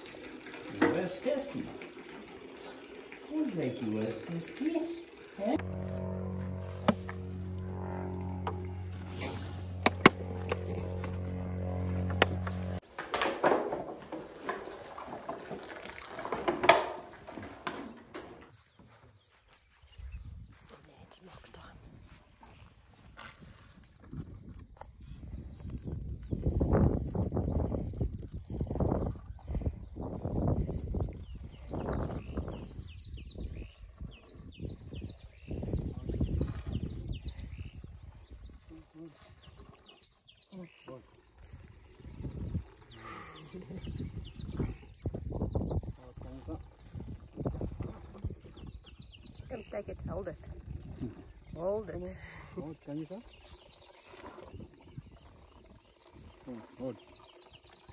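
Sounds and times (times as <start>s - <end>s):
steady low droning tone: 5.3s - 12.8s
elephant calf gulping and sucking: 13.8s - 57.9s.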